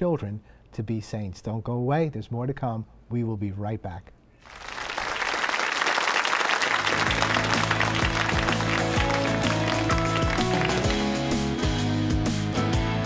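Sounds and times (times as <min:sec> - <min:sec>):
audience applause: 0:04.4 - 0:11.4
upbeat theme music: 0:06.7 - 0:13.0.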